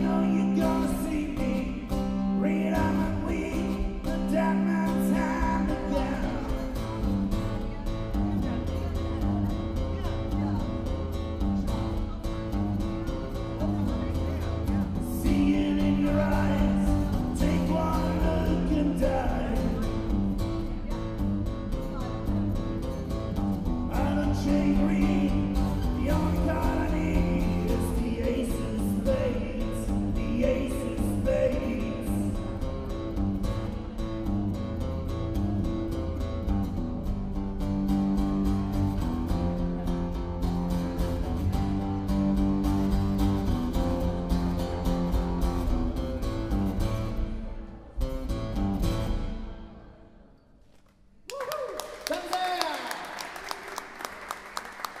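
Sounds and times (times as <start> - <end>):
man singing: 0.0 - 7.8, 13.7 - 21.1, 23.8 - 33.0
acoustic guitar strumming: 0.0 - 50.8.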